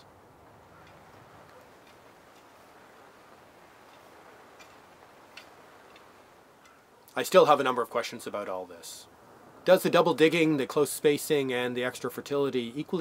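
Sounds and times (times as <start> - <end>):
soft scattered ticks: 0.7 - 7.2.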